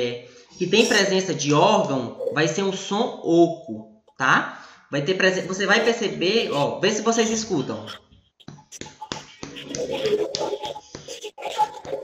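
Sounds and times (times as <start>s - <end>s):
fingers tapping on chest: 7.9s - 12.0s.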